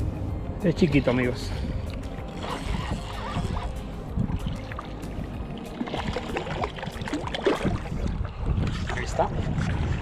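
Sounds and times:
wind on microphone: 0:01.4 - 0:10.0
water sloshing in shallows: 0:01.8 - 0:10.0.

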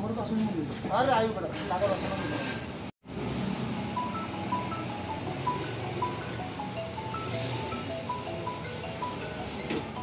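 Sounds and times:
simple melody of short notes: 0:03.8 - 0:10.0.

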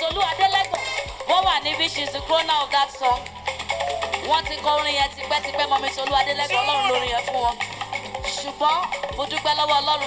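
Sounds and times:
drum beats: 0:00.0 - 0:10.0
band playing: 0:03.6 - 0:04.4, 0:06.3 - 0:07.2.

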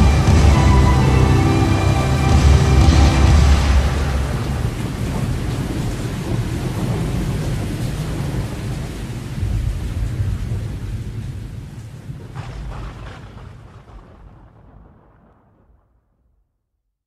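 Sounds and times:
rain hissing: 0:00.0 - 0:15.3
rolling thunder: 0:00.0 - 0:16.0.

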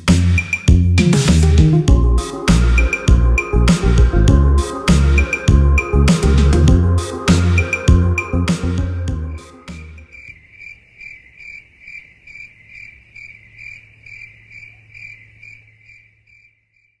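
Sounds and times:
outro music: 0:00.0 - 0:10.1
low hum: 0:01.8 - 0:10.1
cricket-like chirping: 0:10.0 - 0:17.0.

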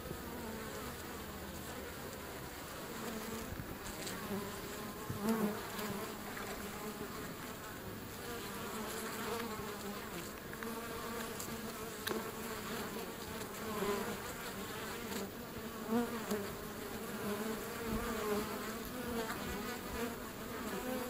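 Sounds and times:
honey bees buzzing: 0:00.0 - 0:21.0.

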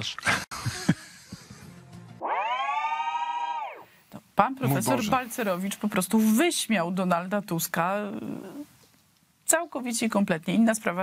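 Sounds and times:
synthesized swooping tone: 0:02.2 - 0:03.9.

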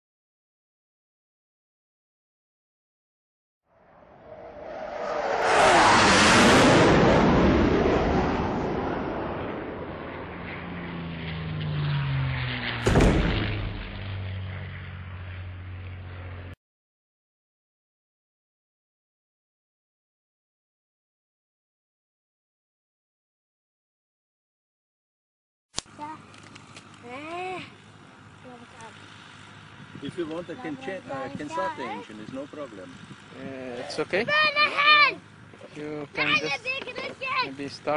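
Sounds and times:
whoosh with falling pitch: 0:03.8 - 0:14.4
sudden hit: 0:12.8 - 0:14.4.

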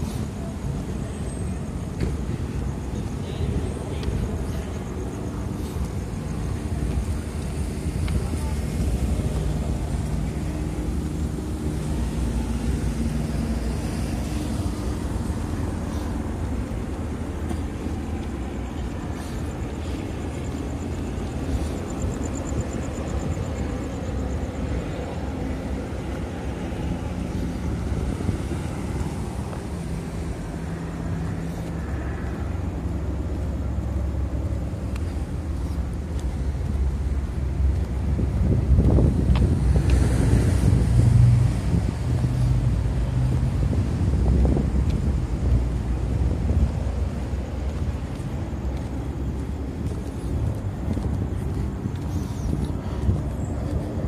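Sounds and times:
cars driving past: 0:00.0 - 0:54.0
low rumble of road traffic: 0:00.0 - 0:54.0.

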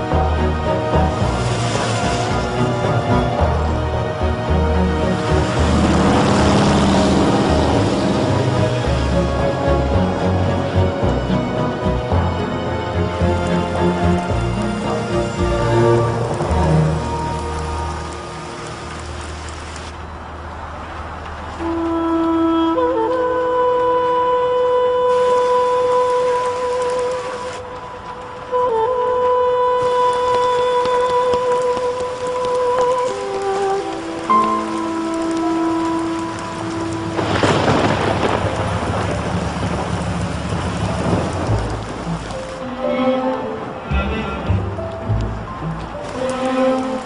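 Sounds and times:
background music: 0:00.0 - 0:19.9, 0:21.6 - 0:47.0
tyres on dirt road: 0:00.0 - 0:47.0
hiss of noise: 0:00.9 - 0:03.7, 0:24.8 - 0:28.4
car engine driving past: 0:04.4 - 0:10.1.

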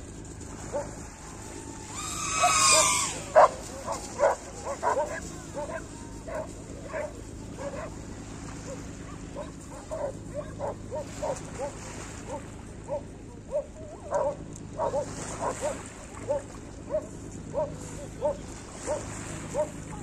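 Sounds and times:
dog high-pitched cry: 0:01.9 - 0:05.8
dog barking: 0:02.8 - 0:08.0, 0:08.6 - 0:19.8.

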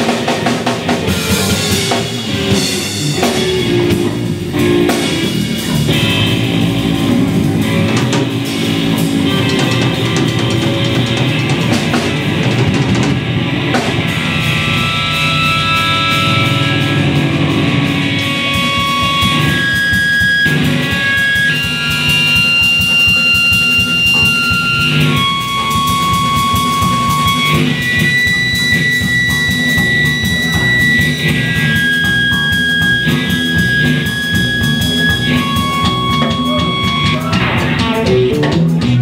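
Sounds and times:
drum kit: 0:00.0 - 0:39.0
electric bass: 0:00.0 - 0:39.0
electric guitar sustained notes: 0:00.0 - 0:39.0.

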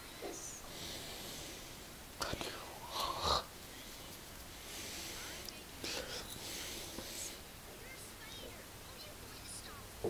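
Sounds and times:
person whispering: 0:02.2 - 0:04.2, 0:04.9 - 0:07.4.

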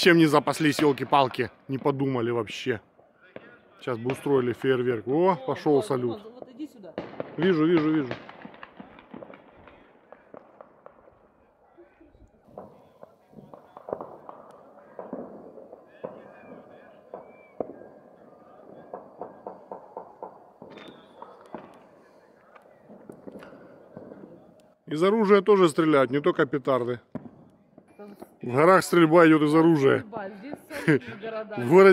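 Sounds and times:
gunshots: 0:00.0 - 0:02.2, 0:05.8 - 0:11.3, 0:12.5 - 0:24.5, 0:27.1 - 0:27.5
distant fireworks and firecrackers: 0:00.0 - 0:31.9.

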